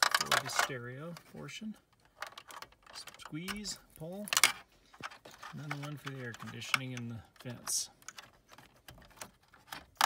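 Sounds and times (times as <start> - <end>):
plastic connector clicks and rattles: 0.0 - 0.8, 1.8 - 10.0.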